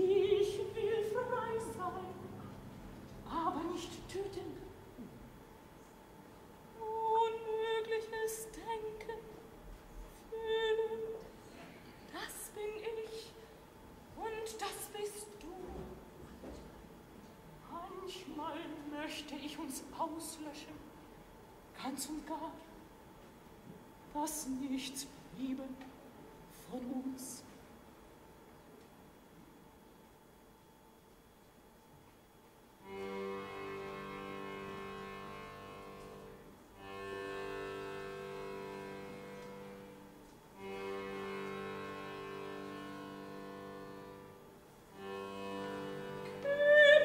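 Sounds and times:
quiet orchestral chords: 0.0s - 9.6s, 32.8s - 47.0s.

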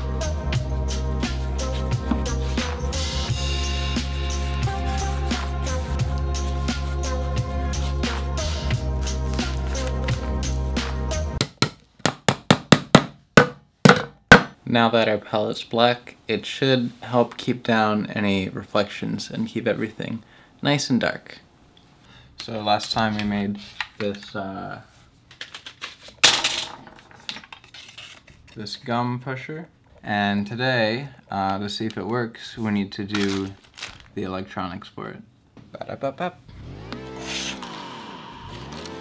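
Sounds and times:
background music: 0.0s - 11.5s.

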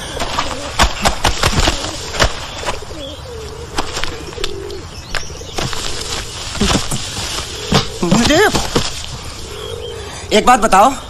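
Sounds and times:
pigeons cooing: 0.0s - 11.0s.

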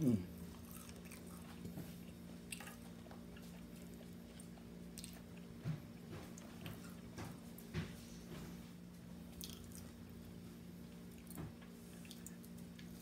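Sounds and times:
steady low hum: 0.0s - 13.0s
faint chewing: 0.4s - 7.4s, 9.3s - 13.0s.

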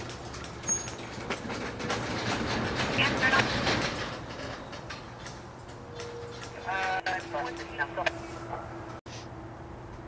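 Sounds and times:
train wheels and brakes grinding: 0.0s - 9.0s
brake squeals: 0.3s - 1.3s, 3.0s - 9.0s.

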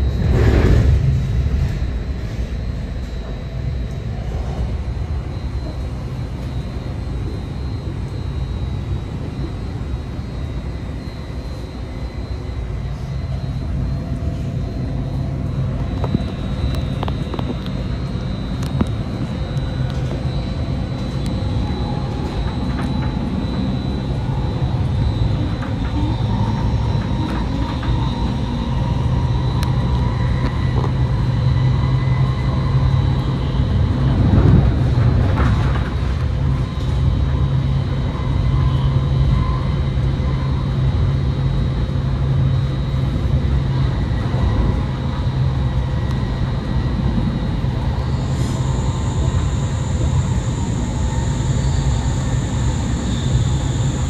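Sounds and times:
faint rising whine: 0.0s - 54.0s
train rumbling: 0.0s - 54.0s.

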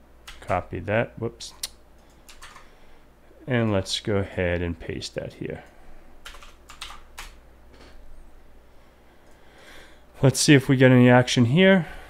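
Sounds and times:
computer keyboard keys clicking: 0.3s - 0.6s, 2.0s - 2.7s, 6.2s - 7.4s.

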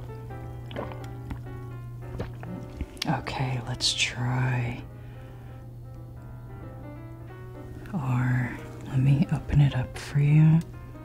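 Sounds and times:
soft background music: 0.0s - 11.0s
gulps and swallows of a drink: 0.6s - 3.2s
wet mouth clicks: 0.7s - 1.5s, 2.1s - 3.2s.

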